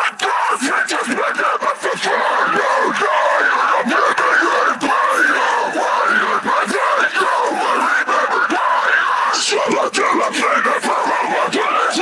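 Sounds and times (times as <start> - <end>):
harsh vocal screaming: 0.0 - 12.0.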